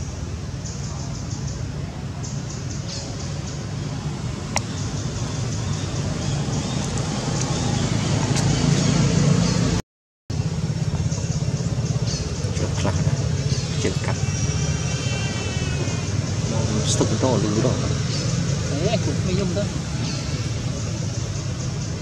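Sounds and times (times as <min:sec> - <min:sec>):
low outdoor rumble: 0:00.0 - 0:22.0.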